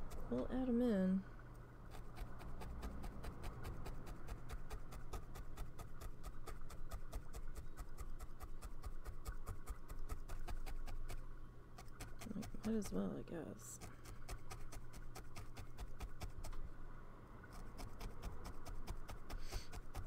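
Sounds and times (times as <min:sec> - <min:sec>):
felting needle poking wool: 0:01.9 - 0:11.2, 0:11.8 - 0:16.6, 0:17.5 - 0:20.0.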